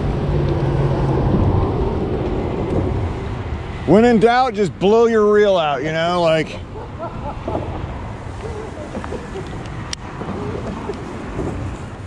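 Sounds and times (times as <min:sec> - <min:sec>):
wind buffeting microphone: 0:00.0 - 0:04.2
steady low rumble: 0:00.0 - 0:04.7.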